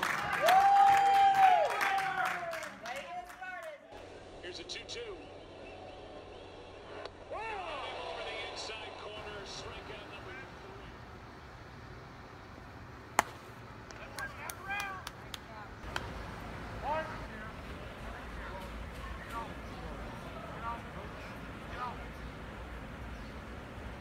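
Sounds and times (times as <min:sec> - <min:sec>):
spectators' voices: 0:03.9 - 0:11.9, 0:13.1 - 0:24.0.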